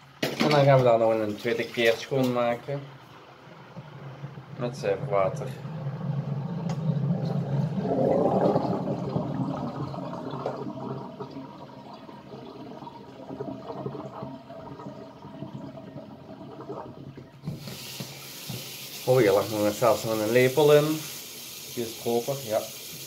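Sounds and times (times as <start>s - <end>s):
water splashing in a sink: 0.2s - 2.6s, 3.4s - 23.0s
hiss of running water: 17.4s - 23.0s.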